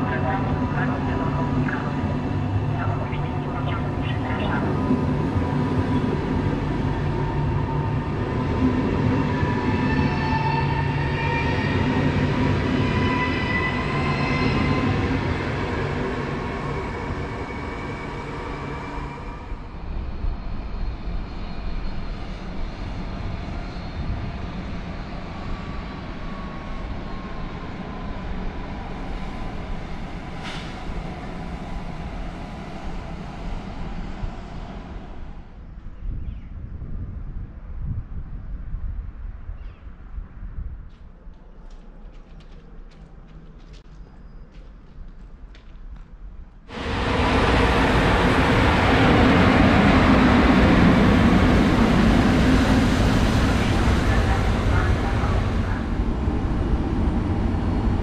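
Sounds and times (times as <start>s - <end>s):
train rumbling: 0.0s - 58.0s.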